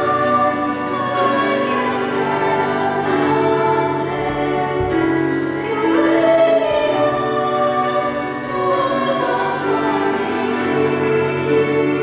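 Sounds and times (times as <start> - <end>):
electric piano: 0.0 - 12.0
violin: 0.0 - 12.0
women singing in harmony: 0.0 - 12.0.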